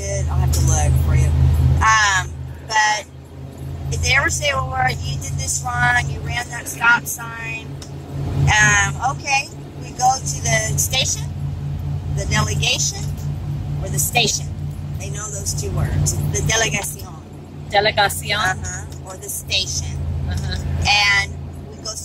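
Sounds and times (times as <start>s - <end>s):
engine drone and road noise: 0.0s - 22.0s
voices talking: 0.0s - 22.0s.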